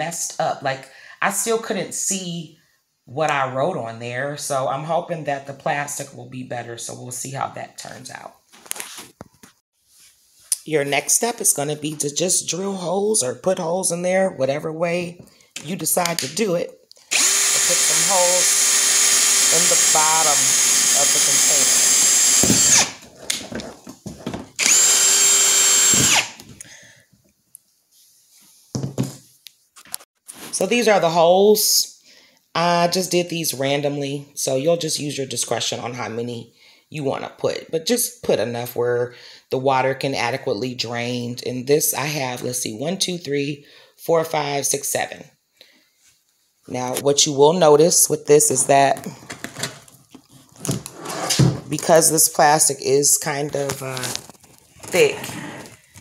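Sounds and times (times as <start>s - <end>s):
cordless drill boring plastic: 17.0s - 23.1s, 24.6s - 26.5s.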